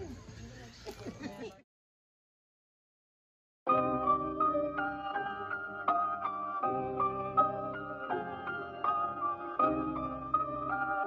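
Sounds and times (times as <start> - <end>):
faint background chatter: 0.0 - 1.6.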